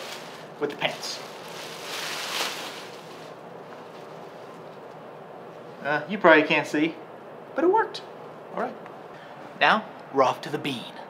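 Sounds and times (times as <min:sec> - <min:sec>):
plastic bag rustling: 0:00.0 - 0:04.8
low steady hiss: 0:00.0 - 0:11.0.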